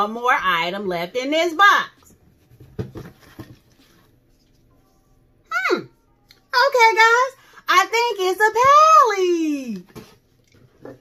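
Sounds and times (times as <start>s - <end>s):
cardboard box taps and rustles: 2.5s - 3.8s.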